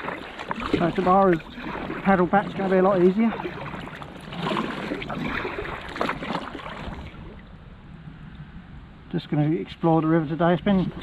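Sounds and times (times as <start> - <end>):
kayak paddle splashing in water: 0.0 - 7.5
water sounds of gliding kayak: 0.0 - 11.0.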